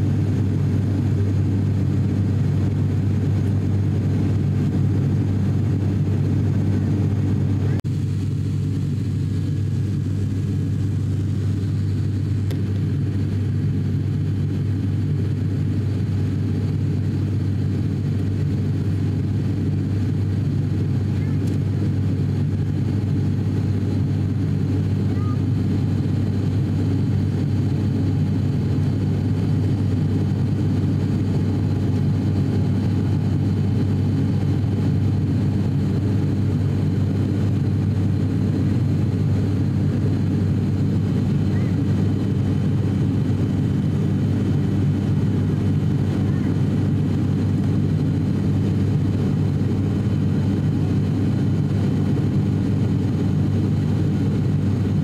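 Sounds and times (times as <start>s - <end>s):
turboprop cabin drone: 0.0s - 55.0s.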